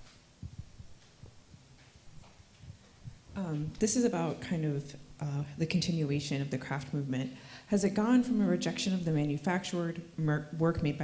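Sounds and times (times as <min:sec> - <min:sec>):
faint low thumps: 0:00.0 - 0:03.9.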